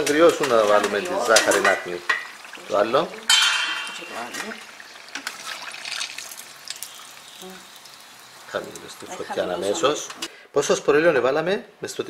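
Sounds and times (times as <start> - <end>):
oil sizzling in a pan: 0.0 - 10.3
loud hiss of frying: 0.0 - 10.4.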